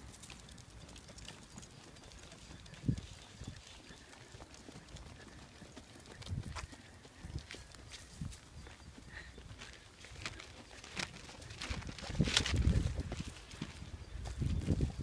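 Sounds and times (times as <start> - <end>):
footsteps on pavement: 0.0 - 15.0.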